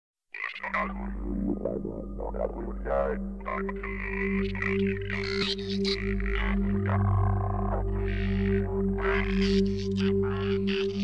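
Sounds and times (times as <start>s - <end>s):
croaking frog-like calls: 0.4s - 11.0s
low electronic drone: 0.6s - 11.0s.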